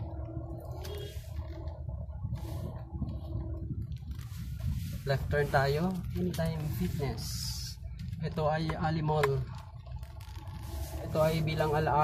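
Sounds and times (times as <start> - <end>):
car engine rumble: 0.0 - 12.0
road noise inside car: 0.0 - 12.0.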